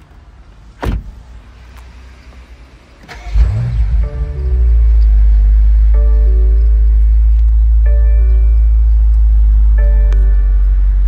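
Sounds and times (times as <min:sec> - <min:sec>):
car door shutting: 0:00.8 - 0:01.2
car engine starting and revving: 0:01.9 - 0:11.0.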